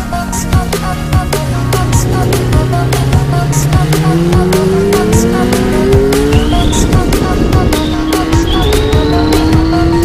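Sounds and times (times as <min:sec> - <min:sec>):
electronic music with steady beat: 0:00.0 - 0:10.0
motorcycle engine accelerating: 0:00.0 - 0:10.0
high rising squeal: 0:07.7 - 0:10.0.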